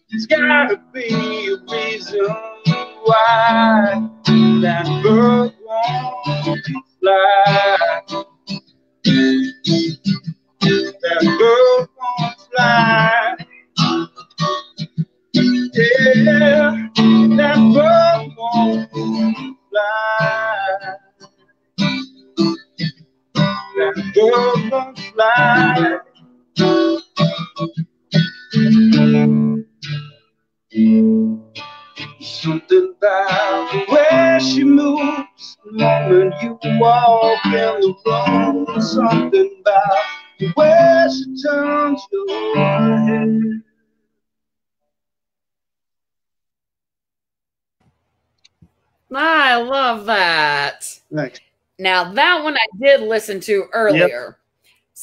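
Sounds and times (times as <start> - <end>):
man singing: 0.0 - 8.2, 10.6 - 13.6, 15.4 - 21.1, 23.6 - 26.1, 32.3 - 43.6, 53.8 - 54.3
acoustic guitar: 0.0 - 43.9, 47.8 - 55.0.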